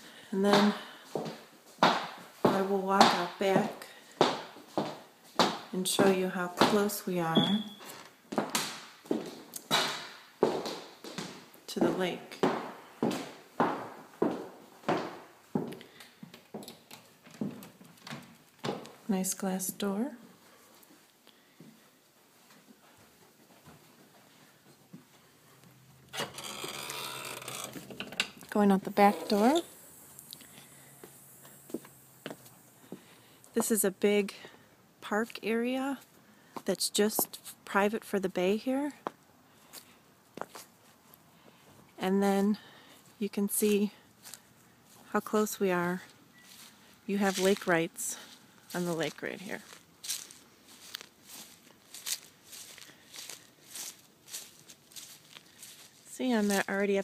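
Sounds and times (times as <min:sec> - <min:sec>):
glass door scraping: 0:26.1 - 0:28.4, 0:29.0 - 0:29.7
footsteps on grass: 0:43.0 - 0:57.0.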